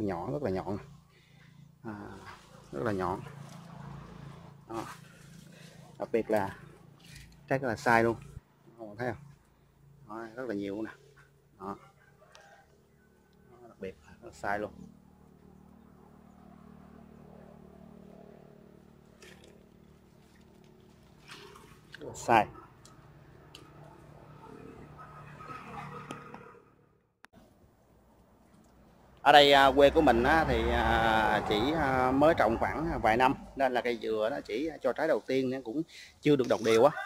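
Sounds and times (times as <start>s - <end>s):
distant engine hum: 0.0s - 35.0s.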